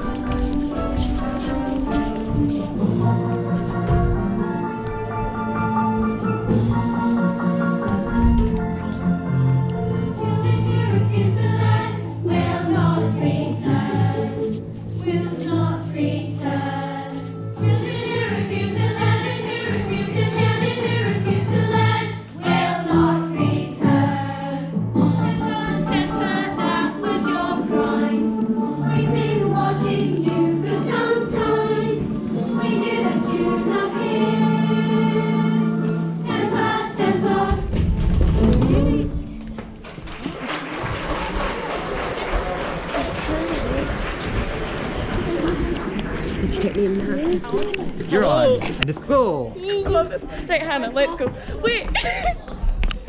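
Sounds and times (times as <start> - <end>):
music: 0.0 - 53.0
choir singing with accompaniment: 9.8 - 39.4.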